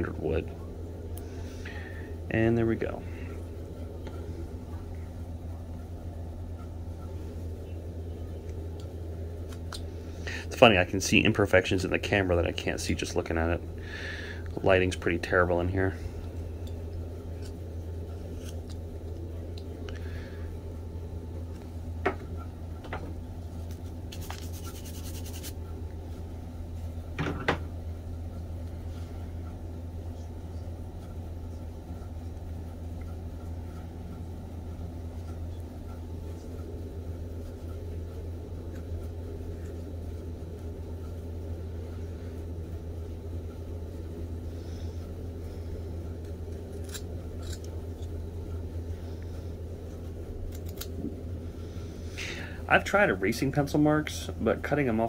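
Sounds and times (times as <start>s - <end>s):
steady low hum: 0.0s - 55.0s
carving knife cutting wood: 46.7s - 48.1s.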